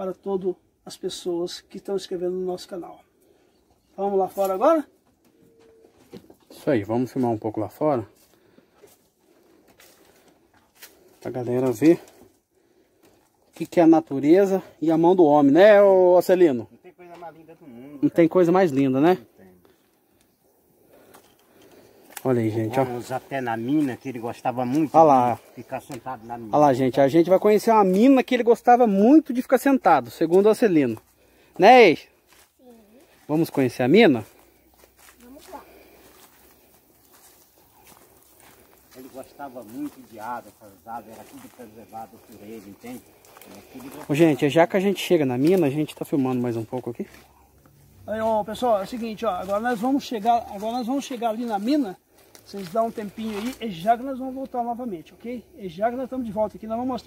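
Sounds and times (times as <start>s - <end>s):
soft footsteps on dirt path: 0.0s - 57.0s
leaves rustling: 4.0s - 16.2s, 18.3s - 57.0s.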